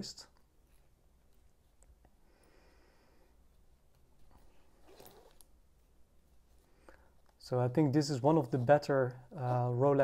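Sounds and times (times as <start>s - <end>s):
hands rustling a fabric strap: 3.4s - 7.4s.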